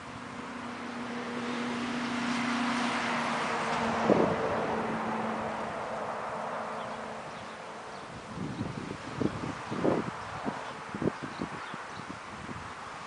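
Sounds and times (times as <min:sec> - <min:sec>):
vehicle passing by: 0:00.0 - 0:13.0.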